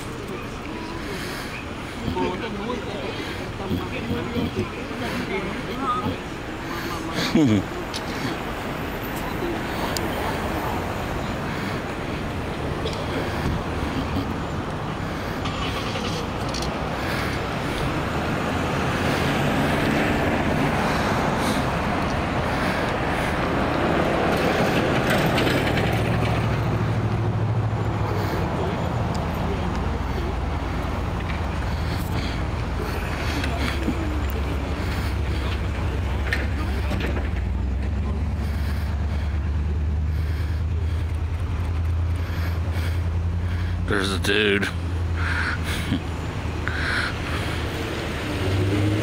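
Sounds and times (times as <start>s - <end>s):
indistinct voices: 0.0s - 49.0s
low engine hum: 0.0s - 49.0s
street traffic: 0.0s - 49.0s.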